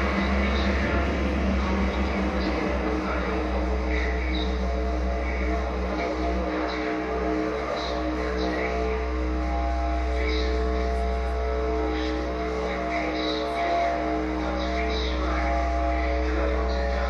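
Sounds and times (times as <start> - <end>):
dark electronic music with drone: 0.0 - 17.0.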